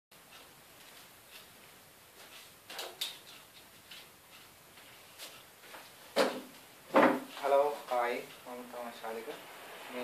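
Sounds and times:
wooden furniture knocks: 6.2s - 7.3s.

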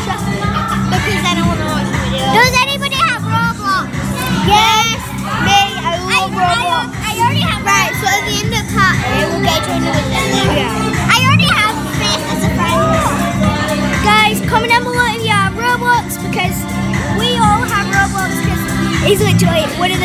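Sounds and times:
background music: 0.0s - 20.0s
children talking and squealing: 0.0s - 20.0s.

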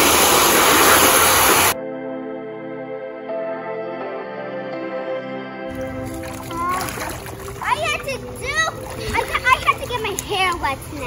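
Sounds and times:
water splashing in kiddie pool: 0.0s - 1.8s, 5.7s - 11.0s
background music: 1.7s - 10.2s
girl's high voice: 6.5s - 11.0s.

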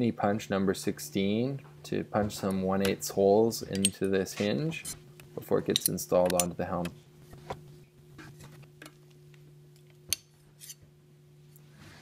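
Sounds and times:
faint steady hum: 0.0s - 12.0s
metal handling clicks: 5.7s - 6.6s.

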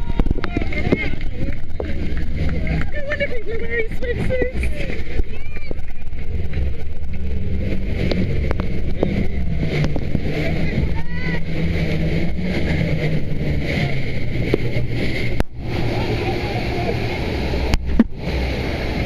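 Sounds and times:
speedboat engine running: 0.0s - 19.0s
water rushing past hull: 0.0s - 19.0s.

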